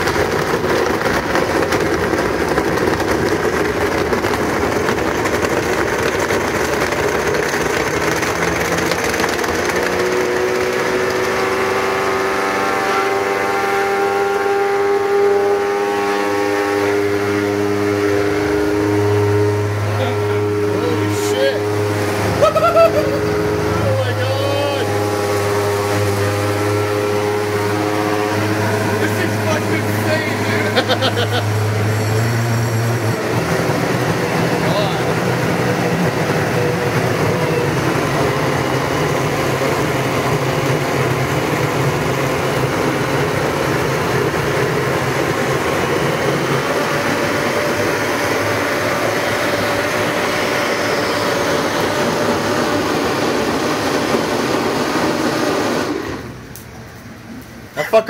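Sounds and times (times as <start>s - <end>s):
blender motor running: 0.0s - 56.6s.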